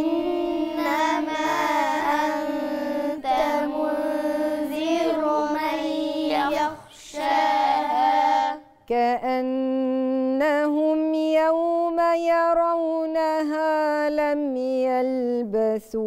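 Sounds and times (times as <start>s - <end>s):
child chanting melodic recitation: 0.0s - 8.6s.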